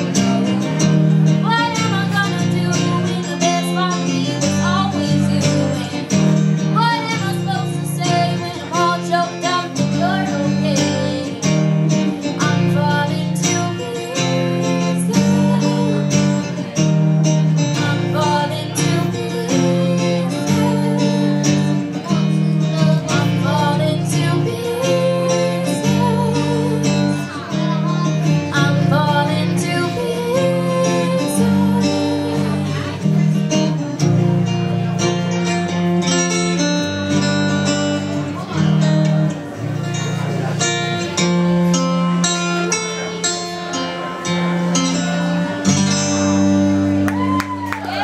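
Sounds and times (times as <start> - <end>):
girl singing pop song: 0.0 - 16.8, 17.6 - 33.1
acoustic guitar strumming: 0.0 - 48.0.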